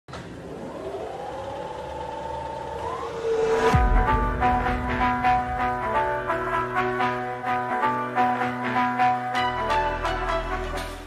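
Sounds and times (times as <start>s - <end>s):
rising tone with hiss: 0.3s - 7.3s
deep falling boom: 2.6s - 7.0s
brass music: 3.7s - 11.0s.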